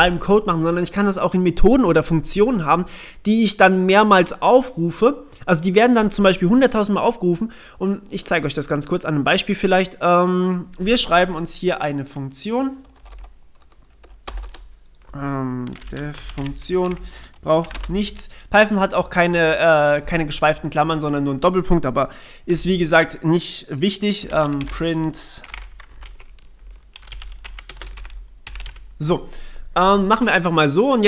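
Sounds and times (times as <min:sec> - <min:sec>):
keyboard typing: 0:12.8 - 0:18.2, 0:24.2 - 0:28.9.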